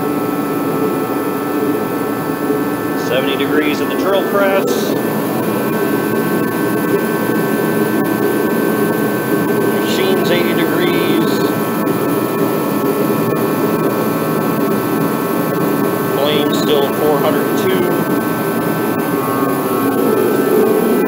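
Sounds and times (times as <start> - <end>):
heater fan and burner rushing: 0.0 - 21.0
high whine: 0.0 - 21.0.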